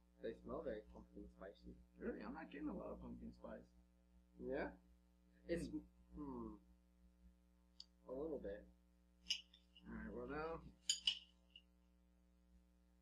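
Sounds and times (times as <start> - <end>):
murmured voice: 0.2 - 3.6, 4.4 - 4.7, 5.5 - 6.6, 8.1 - 8.6, 9.8 - 10.6
spoons clinking against bowls: 10.9 - 11.2.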